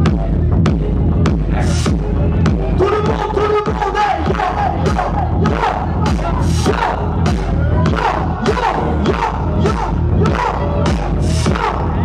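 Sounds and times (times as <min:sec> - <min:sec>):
electronic bass music: 0:00.0 - 0:12.0
crowd shouting: 0:02.8 - 0:12.0.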